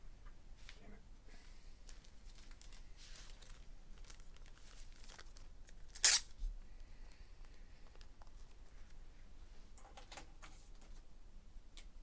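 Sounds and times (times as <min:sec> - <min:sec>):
packaging rustling and crinkling: 0:01.8 - 0:06.4
wrapper ripping: 0:02.0 - 0:06.4.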